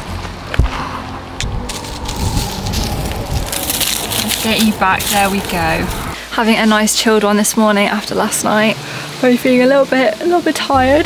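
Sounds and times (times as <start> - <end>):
dry palm frond rustling: 0.0 - 6.2
wind rumbling on microphone: 0.0 - 6.2.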